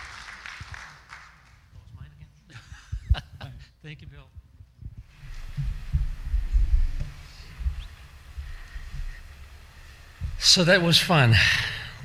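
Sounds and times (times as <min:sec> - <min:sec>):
microphone handling thumps: 0:04.3 - 0:09.3, 0:10.1 - 0:10.4.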